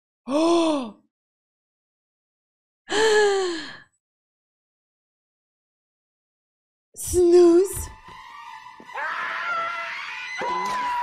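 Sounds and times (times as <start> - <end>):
woman sighing: 2.9 - 3.9.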